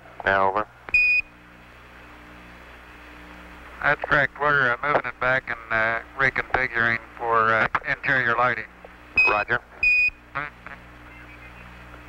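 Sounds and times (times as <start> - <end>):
faint radio hiss: 0.0 - 12.0
low hum: 0.0 - 12.0.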